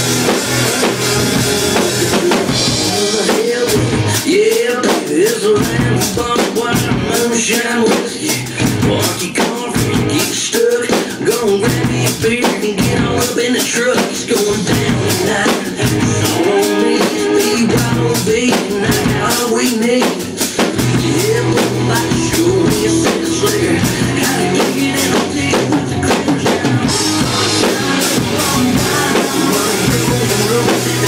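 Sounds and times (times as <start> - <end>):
country-rock band recording: 0.0 - 31.0
rock drum kit playing: 0.0 - 31.0.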